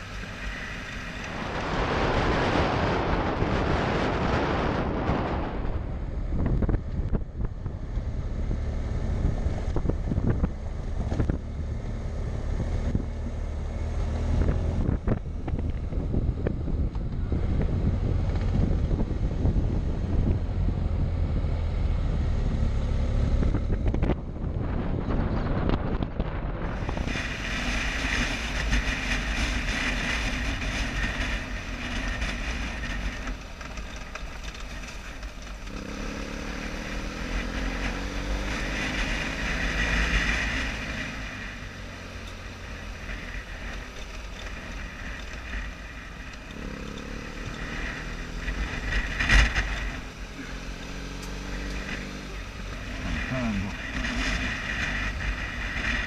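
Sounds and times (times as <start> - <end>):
motorcycle engine running: 0.0 - 56.0
wind rumble on microphone: 0.0 - 56.0.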